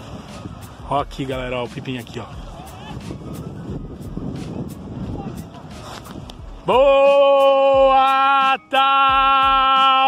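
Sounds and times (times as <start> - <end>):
wind rumbling on microphone: 0.0 - 8.1.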